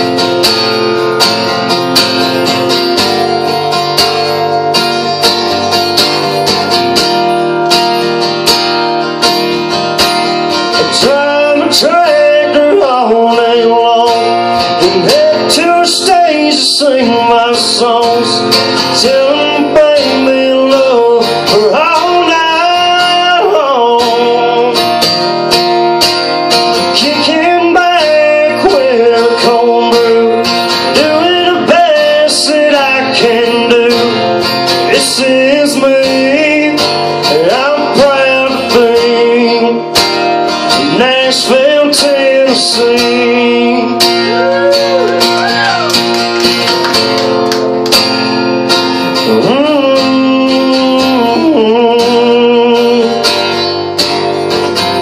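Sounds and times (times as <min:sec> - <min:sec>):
strummed acoustic guitar: 0:00.0 - 0:55.0
man singing country song: 0:08.9 - 0:46.0, 0:48.2 - 0:55.0.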